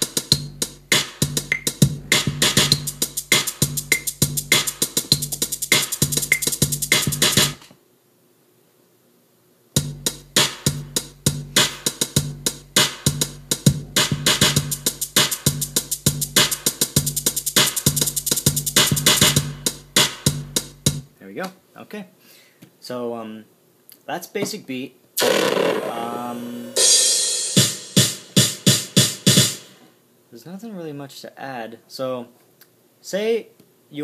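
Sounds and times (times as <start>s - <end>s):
drum machine beat: 0.0s - 7.6s, 9.8s - 21.1s, 25.2s - 29.8s.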